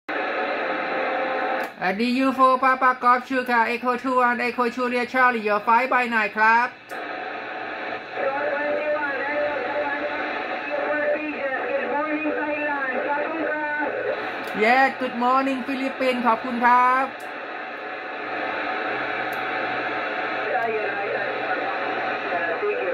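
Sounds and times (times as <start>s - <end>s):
noisy radio signal with tones: 0.1s - 22.9s
man speaking over radio: 8.2s - 17.2s.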